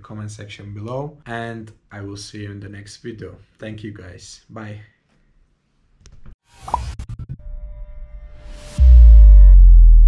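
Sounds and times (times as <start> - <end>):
pop-like sound effects: 6.5 - 7.4.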